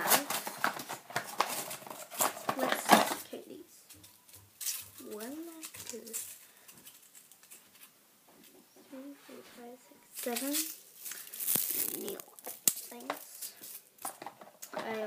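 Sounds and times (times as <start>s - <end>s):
makeup items clicking and rattling: 0.0s - 3.3s, 3.9s - 7.6s, 11.5s - 15.0s.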